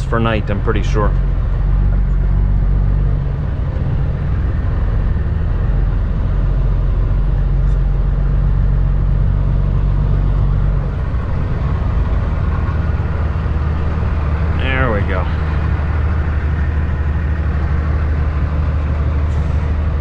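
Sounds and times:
diesel truck engine running: 0:00.0 - 0:20.0.

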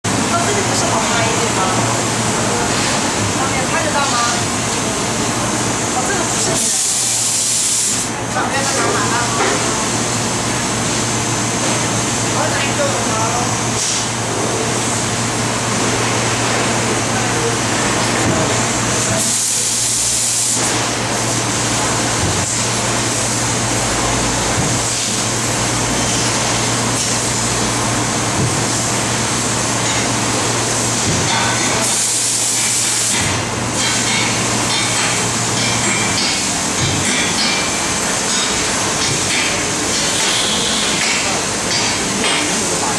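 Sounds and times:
hiss of cutting gas: 0:06.4 - 0:08.2.

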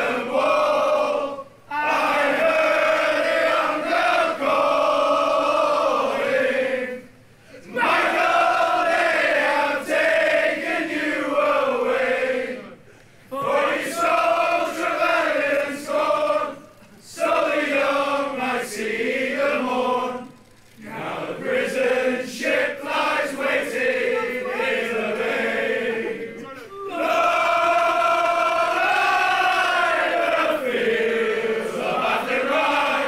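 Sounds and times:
men singing in unison: 0:27.0 - 0:33.0.

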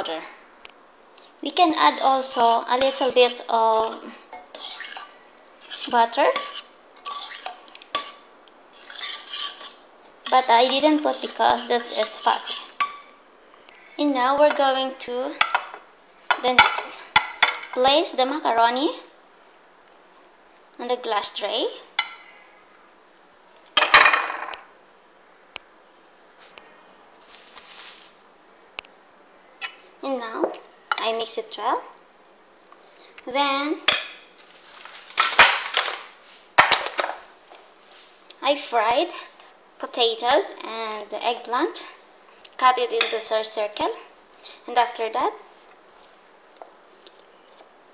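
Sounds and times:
utensil scraping a pan: 0:01.7 - 0:13.0.

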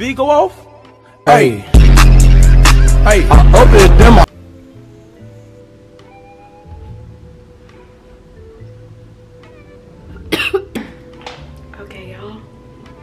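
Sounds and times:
quiet background music: 0:00.0 - 0:13.0
person coughing loudly: 0:10.3 - 0:11.0.

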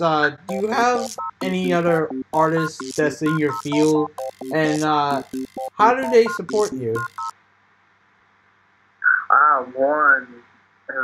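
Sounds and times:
two-tone electronic beeps: 0:00.4 - 0:07.3.

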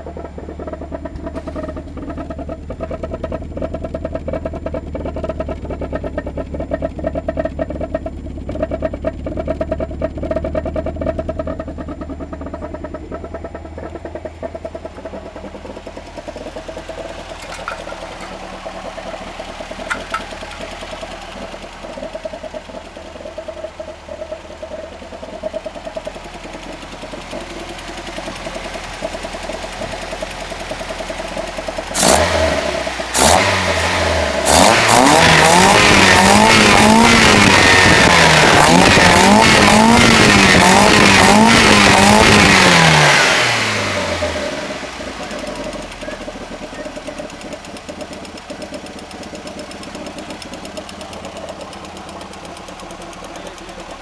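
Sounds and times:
car engine idling: 0:00.0 - 0:54.0
engine revving: 0:00.0 - 0:54.0.

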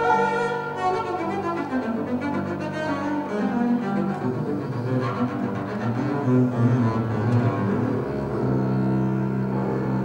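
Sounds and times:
bowed double bass: 0:00.0 - 0:10.0
grand piano accompaniment: 0:00.0 - 0:10.0.

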